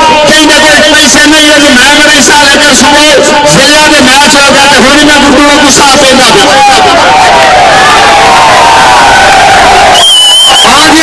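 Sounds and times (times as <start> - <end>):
crowd cheering and shouting: 0.0 - 11.0
long falling shout: 6.6 - 11.0.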